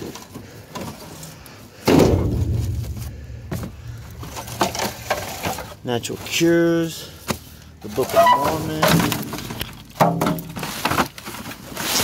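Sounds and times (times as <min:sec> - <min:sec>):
junk clattering in metal dumpster: 0:01.8 - 0:05.8, 0:07.9 - 0:12.0
loud bump with low rumble: 0:01.9 - 0:05.6.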